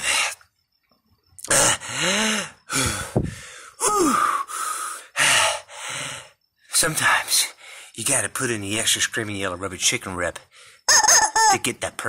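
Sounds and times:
rubber chicken squawking: 10.9s - 11.6s.

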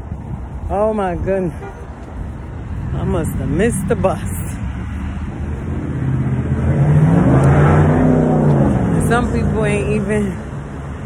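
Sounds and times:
vehicle engine driving past: 5.0s - 9.6s.

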